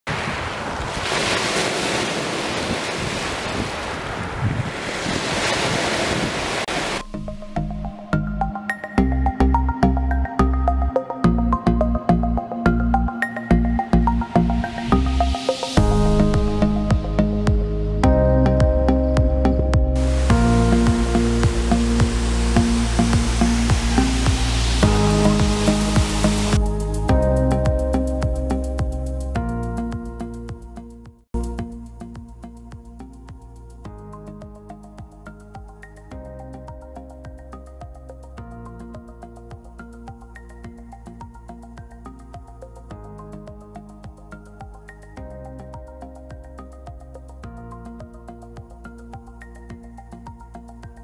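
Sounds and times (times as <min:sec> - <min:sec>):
waves on pebble beach: 0:00.1 - 0:07.1
river and waterfall rushing: 0:00.1 - 0:07.3, 0:20.0 - 0:27.1
music with a beat: 0:07.5 - 0:51.0.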